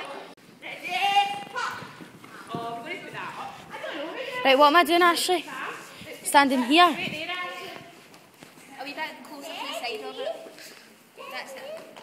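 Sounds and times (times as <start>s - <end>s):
horse hoofbeats on sand: 0.9s - 3.8s.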